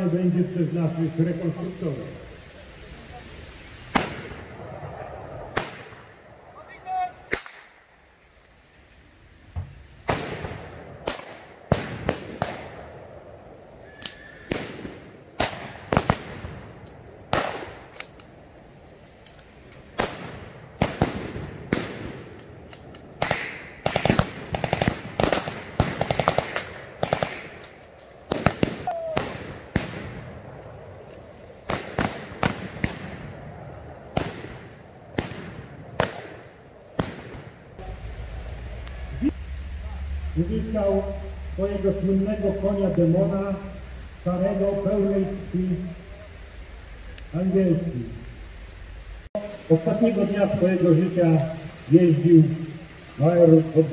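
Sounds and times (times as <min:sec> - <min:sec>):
single rifle shots: 0:03.9 - 0:06.1, 0:10.1 - 0:13.0, 0:17.3 - 0:18.2, 0:20.0 - 0:22.4, 0:23.2 - 0:30.4, 0:31.7 - 0:33.4, 0:34.1 - 0:37.6.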